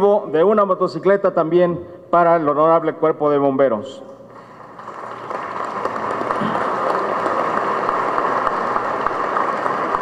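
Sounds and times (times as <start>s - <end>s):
audience applauding: 4.5s - 10.0s.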